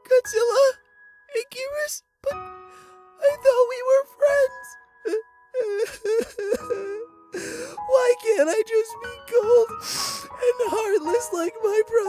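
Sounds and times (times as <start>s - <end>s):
person mock crying and wailing: 3.2s - 9.8s, 10.4s - 12.0s.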